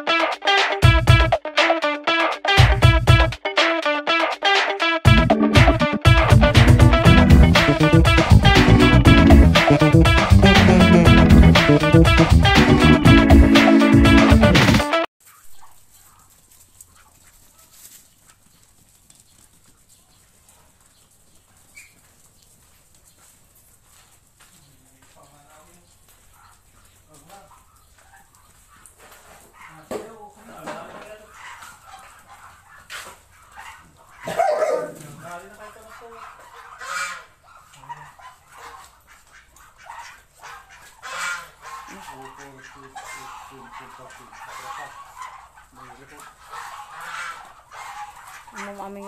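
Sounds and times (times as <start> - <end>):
ducks calling: 0.0 - 18.8, 19.8 - 49.0.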